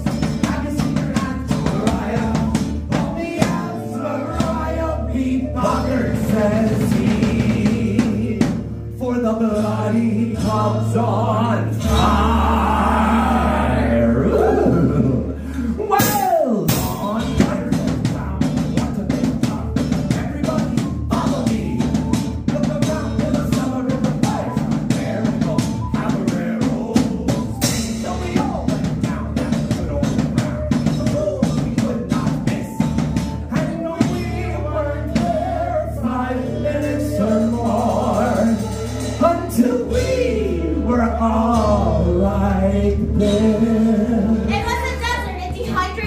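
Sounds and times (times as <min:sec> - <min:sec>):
quick drum beat: 0:00.0 - 0:04.9, 0:05.7 - 0:08.7, 0:15.9 - 0:40.3, 0:44.5 - 0:46.0
folk band playing: 0:00.0 - 0:46.0
sung shout: 0:11.8 - 0:16.9
whistle melody: 0:20.0 - 0:26.6, 0:27.2 - 0:28.8, 0:29.6 - 0:35.2.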